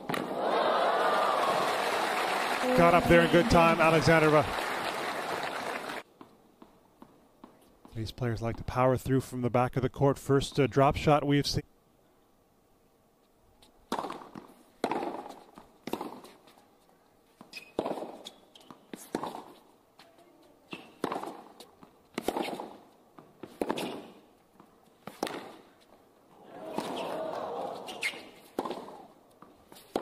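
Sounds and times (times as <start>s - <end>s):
racket hitting tennis ball: 13.9s - 16.4s, 17.5s - 18.2s, 19.0s - 19.6s, 20.7s - 24.2s, 25.0s - 25.7s, 26.6s - 27.2s, 27.8s - 30.0s
tennis ball bouncing: 13.9s - 16.4s, 17.4s - 19.6s, 20.7s - 25.7s, 26.7s - 27.2s, 27.8s - 30.0s.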